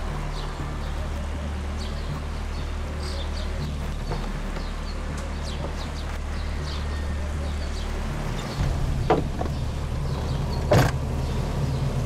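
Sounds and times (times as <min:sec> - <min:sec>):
steady low hum: 0:00.0 - 0:12.0
car door shutting: 0:08.4 - 0:11.2.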